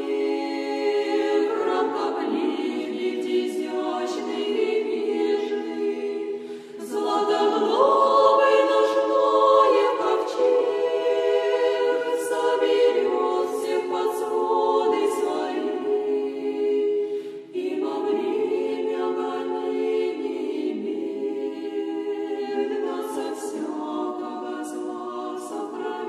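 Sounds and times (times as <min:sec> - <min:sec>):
women's choir singing a cappella: 0:00.0 - 0:26.0.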